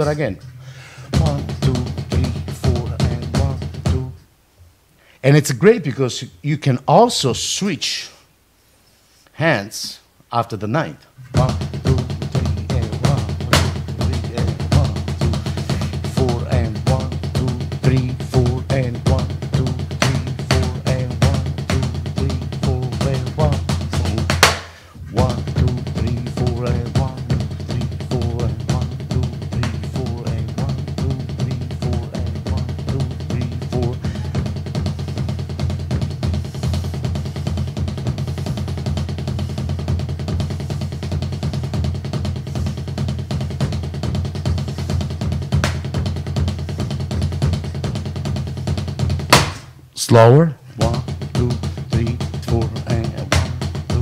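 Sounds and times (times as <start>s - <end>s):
drum kit played with sticks: 0.0s - 4.3s, 11.2s - 54.0s.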